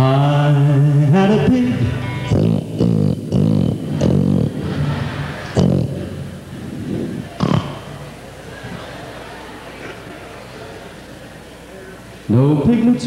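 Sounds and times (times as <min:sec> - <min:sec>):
choppy vocal syllables: 0:00.0 - 0:09.5
country band instruments: 0:00.0 - 0:10.6.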